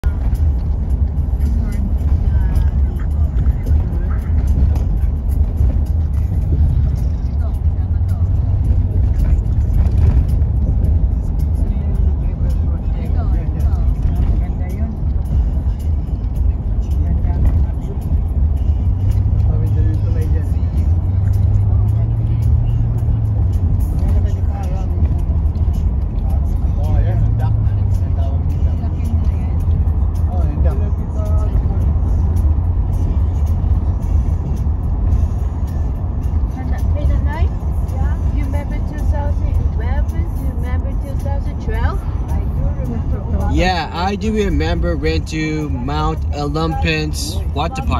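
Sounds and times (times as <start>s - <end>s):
road and engine rumble: 0.0s - 47.9s.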